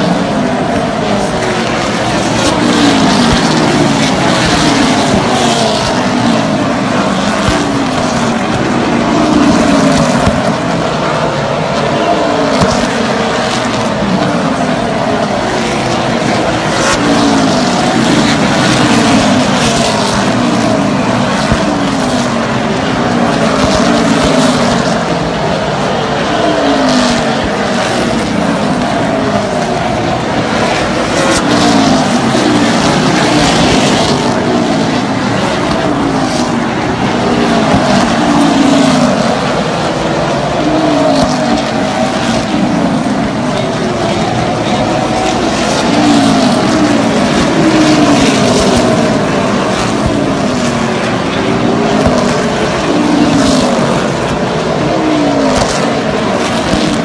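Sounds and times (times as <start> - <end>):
race car engines passing: 0.0 - 57.0.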